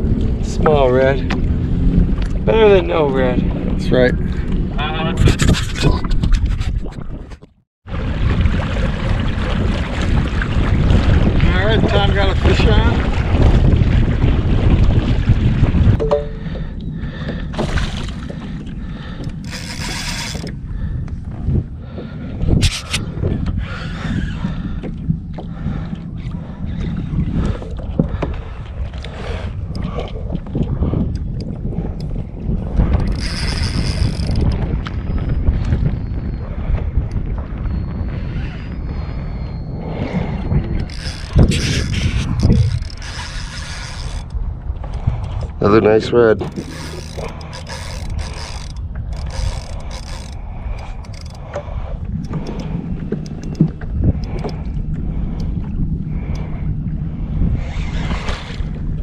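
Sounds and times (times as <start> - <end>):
water against kayak: 0.0 - 59.0
wind buffeting microphone: 0.0 - 59.0
fishing reel clicks and knocks: 19.2 - 20.6, 33.0 - 34.6, 40.8 - 44.4, 46.4 - 51.5.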